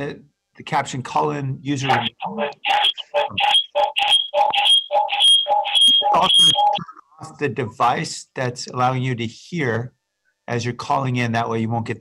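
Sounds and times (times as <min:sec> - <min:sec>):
garbled audio feedback bursts: 0:01.8 - 0:07.0.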